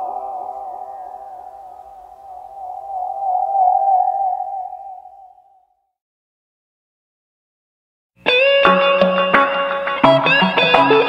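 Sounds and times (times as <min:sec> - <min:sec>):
sustained wavering tone with vibrato: 0:00.0 - 0:05.8.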